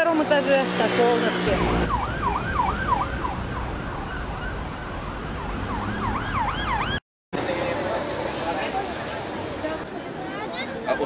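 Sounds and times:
low rumble of street traffic: 0.0 - 11.0
emergency vehicle siren wailing: 1.4 - 7.0.

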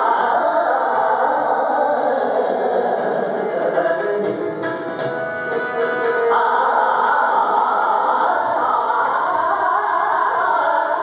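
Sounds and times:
harmonium: 0.0 - 11.0
man singing: 0.0 - 11.0
tabla: 0.0 - 11.0
tanpura drone: 2.5 - 10.6.

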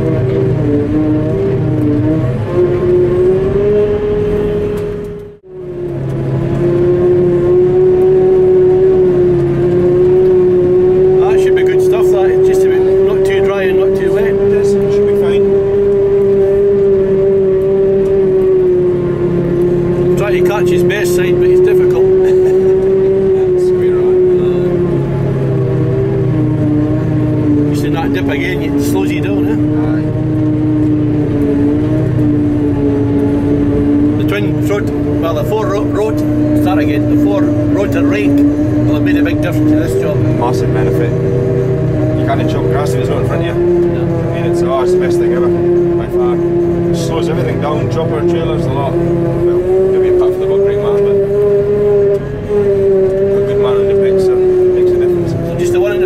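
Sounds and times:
harvester machine whine: 0.0 - 56.0
low machine drone: 0.0 - 56.0.

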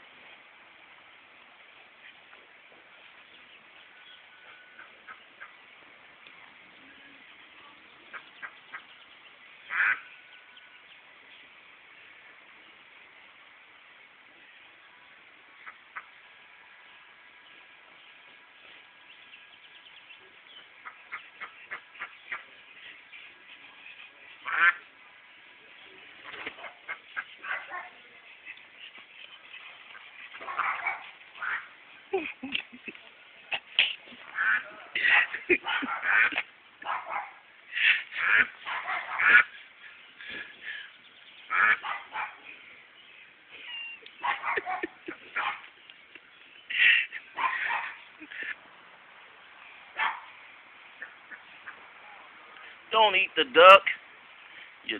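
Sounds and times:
ducks quacking: 4.4 - 5.7, 8.1 - 9.0, 9.6 - 10.3, 15.6 - 16.2, 20.8 - 25.0, 26.2 - 40.8, 41.5 - 42.4, 46.7 - 48.6, 50.9 - 52.0.

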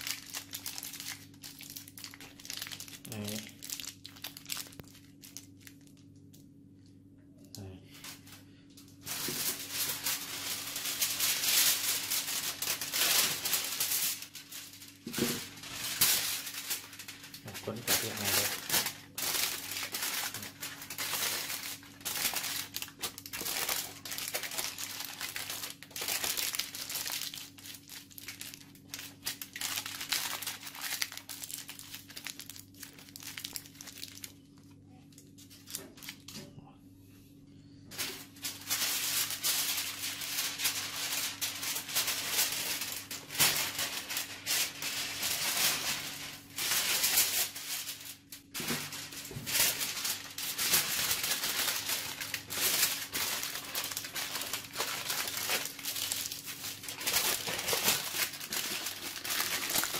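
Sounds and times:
aluminium foil crinkling: 0.0 - 6.5, 7.9 - 36.4, 37.9 - 59.9.

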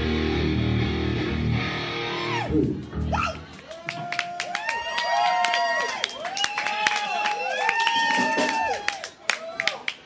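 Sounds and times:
electric guitar: 0.0 - 3.6
metal band playing: 0.0 - 3.6.

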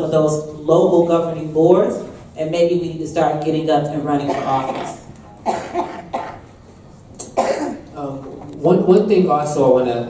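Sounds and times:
person coughing: 4.2 - 6.5, 7.2 - 7.9.

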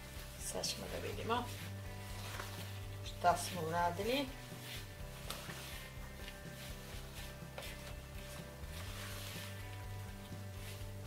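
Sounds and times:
background music with low bass: 0.0 - 11.0
wooden spoon scraping bowl: 0.2 - 11.0.

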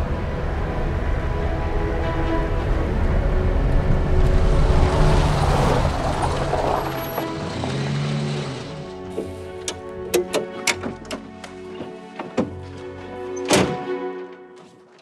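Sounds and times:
car engine rumble: 0.0 - 11.1
background music sustained tones: 0.0 - 15.0.

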